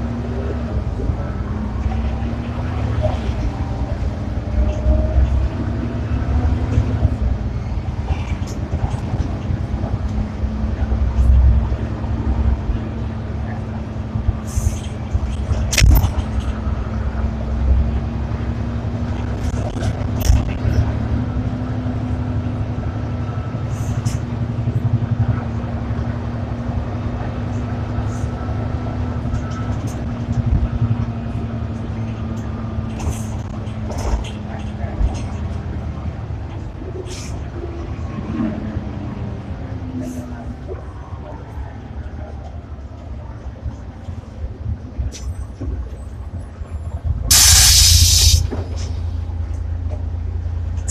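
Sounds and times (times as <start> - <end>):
bus diesel engine drone: 0.0 - 50.9.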